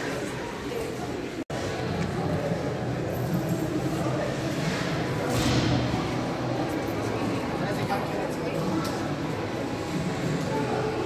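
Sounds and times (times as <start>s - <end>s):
indistinct voices in echoing hall: 0.0s - 11.0s.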